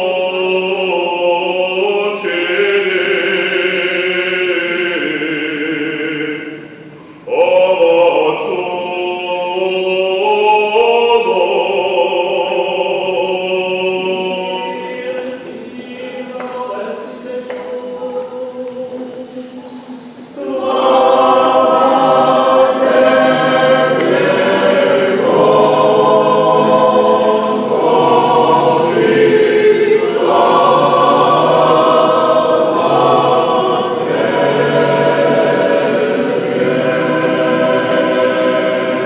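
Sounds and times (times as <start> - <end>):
choir singing unaccompanied chant: 0.0 - 39.0.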